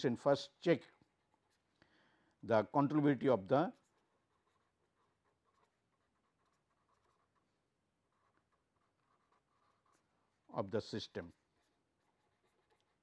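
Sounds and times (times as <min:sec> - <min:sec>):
marker pen scratching on paper: 0:00.6 - 0:01.8, 0:02.6 - 0:13.0.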